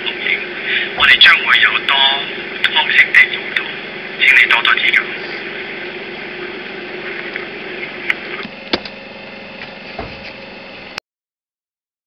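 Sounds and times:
low hum and hiss: 0.0s - 11.0s
dull thump: 9.6s - 10.4s.

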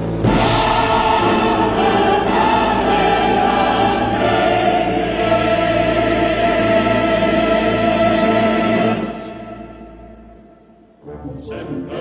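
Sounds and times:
choir and orchestra holding chord: 0.0s - 12.0s.

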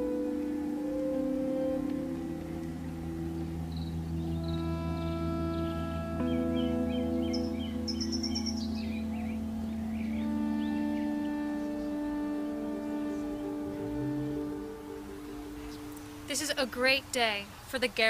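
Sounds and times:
slow held chords music: 0.0s - 16.8s
birds chirping: 0.0s - 18.0s.

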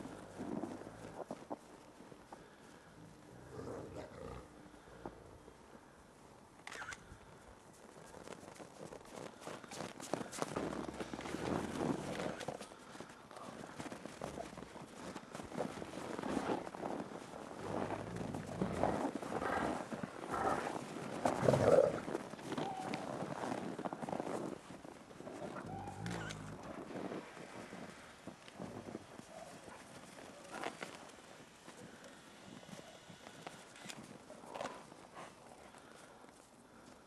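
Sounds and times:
wolf growling low: 3.0s - 4.6s, 17.6s - 22.1s.

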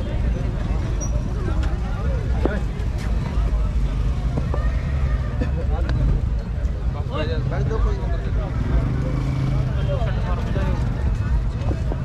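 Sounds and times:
men talking: 6.9s - 10.8s.

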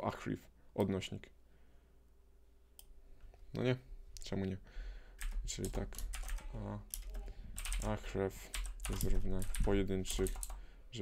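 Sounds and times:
computer keyboard typing: 5.2s - 10.6s.

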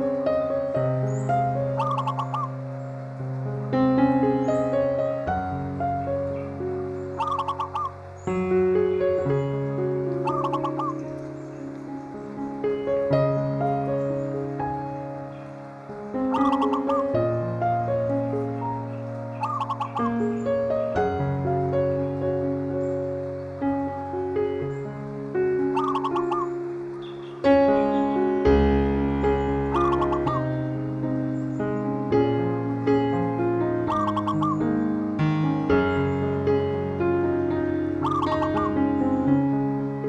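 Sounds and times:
soft piano chords: 0.0s - 40.0s
songbird chirping: 0.0s - 40.0s
bird calling: 1.0s - 3.1s, 6.3s - 21.1s, 24.3s - 28.4s, 29.3s - 31.9s, 33.2s - 34.9s, 37.9s - 39.4s.

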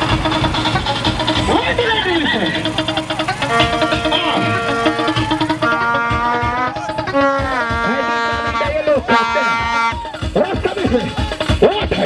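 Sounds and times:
loud music with steady beat: 0.0s - 12.0s
voice: 1.5s - 2.8s, 6.7s - 9.8s, 10.4s - 12.0s.

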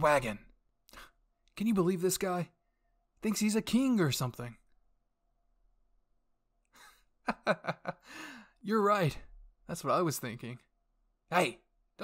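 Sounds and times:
sharp intake of breath: 8.0s - 8.6s.

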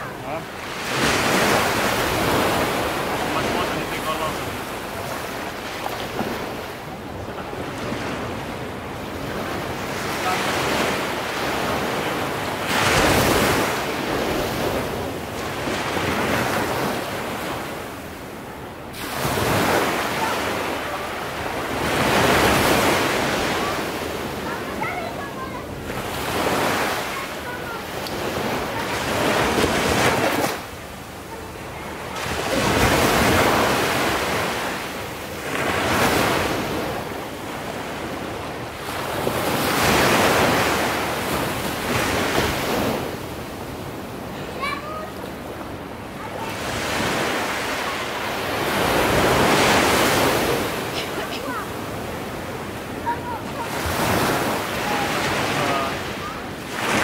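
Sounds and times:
ocean waves breaking: 0.0s - 57.0s.

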